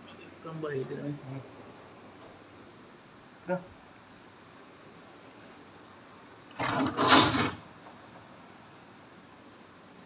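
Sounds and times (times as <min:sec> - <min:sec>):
scraping sliding rasps: 0:06.5 - 0:07.6.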